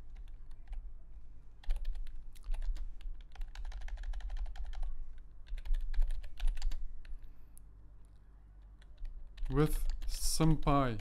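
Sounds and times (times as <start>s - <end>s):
typing on keyboard: 0.0s - 0.8s, 1.6s - 6.9s, 8.7s - 11.0s.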